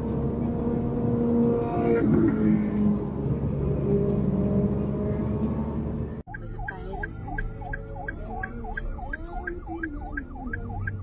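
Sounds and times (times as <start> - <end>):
car engine and road hum: 0.0 - 11.0
emergency vehicle siren: 0.0 - 11.0.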